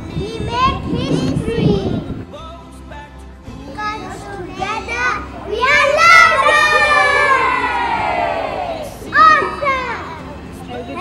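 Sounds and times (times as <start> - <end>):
children calling out excitedly: 3.7 - 11.0.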